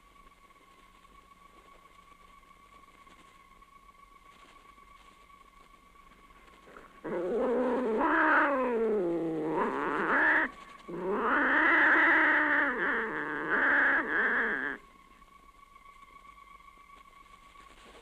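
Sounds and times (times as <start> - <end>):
cat-like yowls: 7.0 - 14.8.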